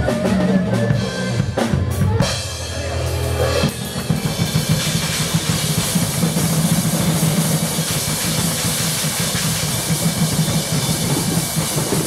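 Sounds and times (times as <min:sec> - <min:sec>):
drum kits rolling: 0:00.0 - 0:12.0
wash of cymbals: 0:03.1 - 0:12.0.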